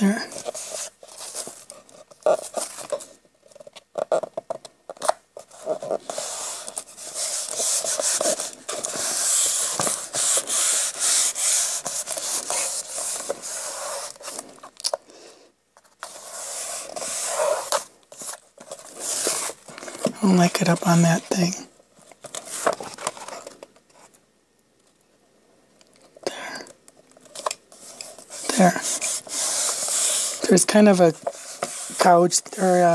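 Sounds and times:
hands rubbing paper: 5.4 - 14.5, 16.0 - 21.4, 27.7 - 32.9.

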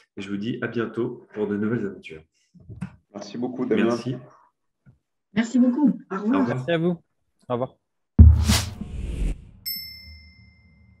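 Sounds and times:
low whoosh: 8.2 - 9.6
bright chime: 9.6 - 11.0.

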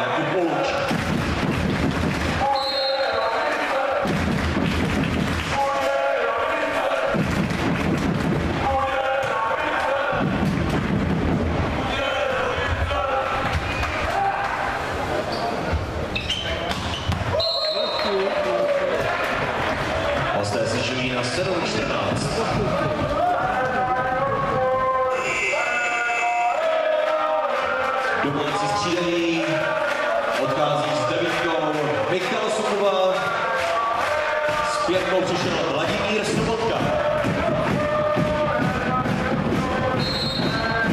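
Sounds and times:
crowd chanting: 0.0 - 16.1, 17.2 - 40.9
bass drums beating: 0.7 - 2.5, 4.0 - 5.6, 7.0 - 11.9, 19.0 - 25.0, 33.2 - 40.9.

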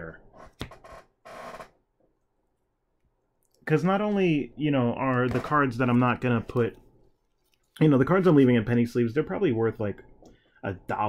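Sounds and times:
rustle of cards in plastic sleeves: 7.0 - 8.3.

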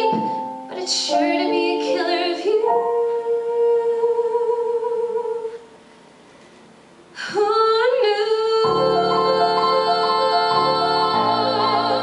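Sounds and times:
piano accompaniment: 0.0 - 4.4, 8.6 - 12.0
woman singing: 0.0 - 5.6, 7.2 - 12.0.

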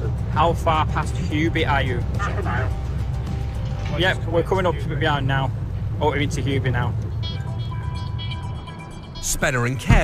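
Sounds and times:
sustained tones music: 0.0 - 6.0, 7.0 - 10.0
car engine and road noise: 0.0 - 10.0.

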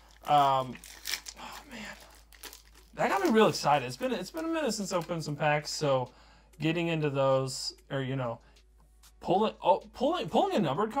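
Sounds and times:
foil wrapper tearing and crinkling: 0.0 - 4.6.

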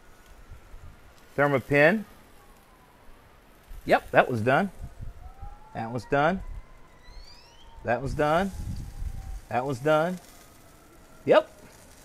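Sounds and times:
wind rumble on microphone: 0.0 - 1.8, 3.6 - 10.8
man speaking: 1.4 - 2.1, 3.9 - 4.8, 5.8 - 6.4, 7.8 - 8.6, 9.5 - 10.2, 11.2 - 11.6.

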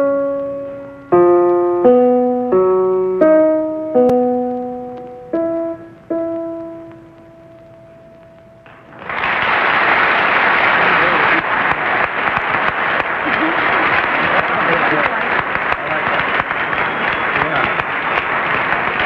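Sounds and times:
piano: 0.0 - 14.1
audience applauding: 8.7 - 19.0
voices through clapping: 9.0 - 19.0.

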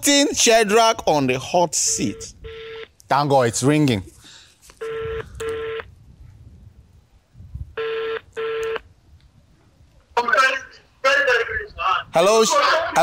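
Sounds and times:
phone ringback tone: 2.1 - 2.9, 4.8 - 5.9, 7.8 - 8.8.

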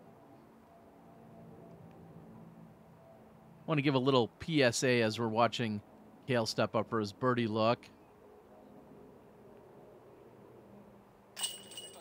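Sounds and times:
disc striking metal basket chains: 11.4 - 12.0.

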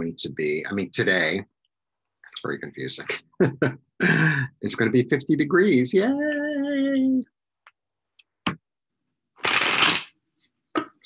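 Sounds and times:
cards riffling: 9.4 - 10.1.

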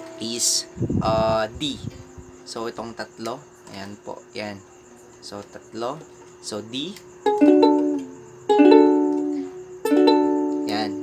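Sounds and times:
ukulele strums: 7.2 - 11.0.

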